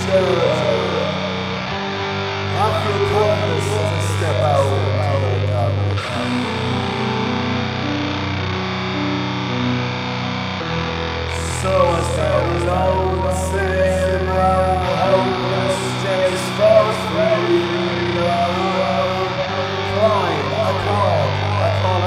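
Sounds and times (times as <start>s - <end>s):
person's voice: 0.0s - 1.8s, 2.5s - 8.0s, 11.3s - 22.0s
distorted punk guitar and bass: 0.0s - 22.0s.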